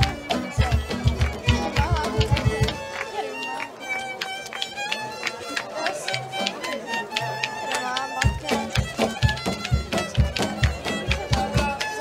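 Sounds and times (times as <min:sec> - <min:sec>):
fiddle playing a tune: 0:00.0 - 0:12.0
strummed string instrument: 0:00.0 - 0:12.0.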